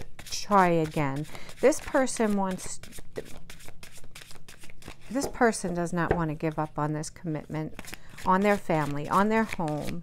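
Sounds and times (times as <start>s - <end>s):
cards being shuffled: 2.2s - 5.7s, 7.7s - 10.0s.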